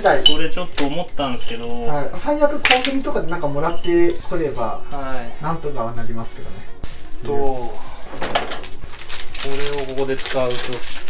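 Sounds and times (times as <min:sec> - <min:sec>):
metal utensils clinking: 0:00.0 - 0:02.0, 0:02.6 - 0:05.2.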